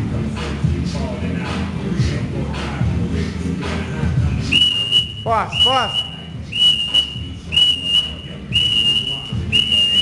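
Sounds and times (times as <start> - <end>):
background music with steady beat: 0.0 - 10.0
high-pitched whistle tone: 4.5 - 10.0.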